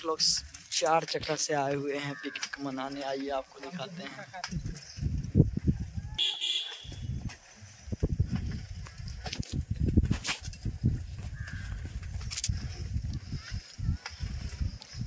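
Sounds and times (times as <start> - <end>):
wind rumble: 4.2 - 15.0
microphone handling noise: 6.8 - 15.0.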